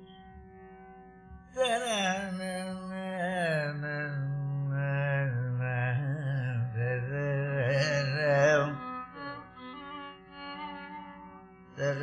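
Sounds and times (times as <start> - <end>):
man singing ornamented phrases: 1.6 - 9.4, 11.8 - 12.0.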